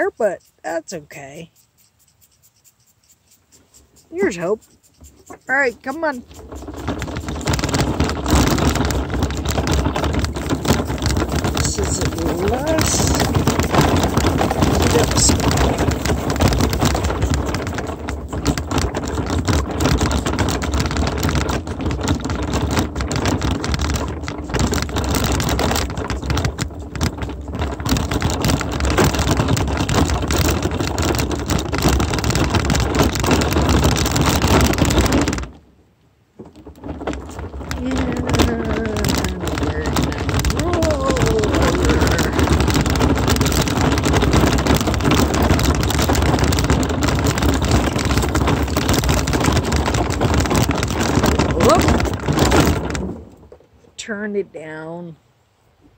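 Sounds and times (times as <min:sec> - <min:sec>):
wheels crunching over gravel: 0:00.0 - 0:01.8, 0:03.2 - 0:54.2.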